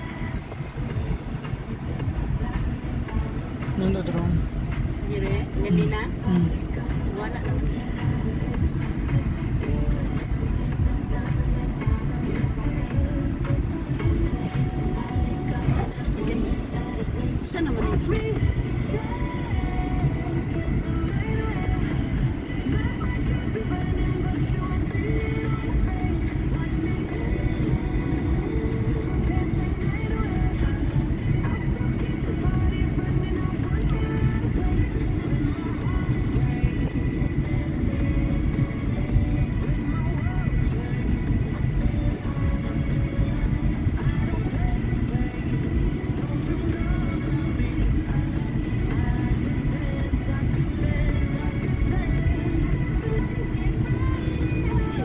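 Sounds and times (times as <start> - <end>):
car cabin road noise: 0.0 - 55.0
music with singing: 0.0 - 55.0.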